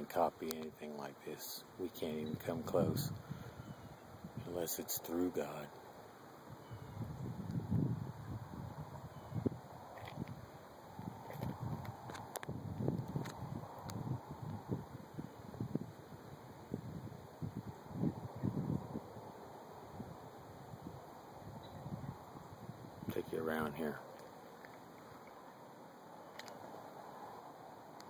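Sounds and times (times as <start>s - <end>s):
wind buffeting microphone: 2.2s - 4.7s, 6.5s - 24.0s
faint clicks: 24.1s - 25.4s, 26.3s - 26.8s.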